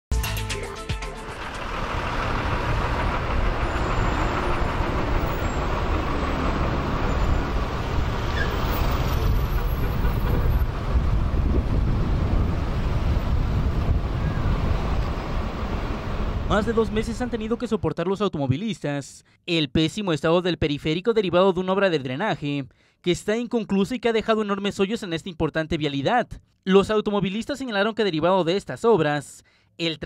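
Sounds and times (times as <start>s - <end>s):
traffic on a broken road: 1.2s - 17.6s.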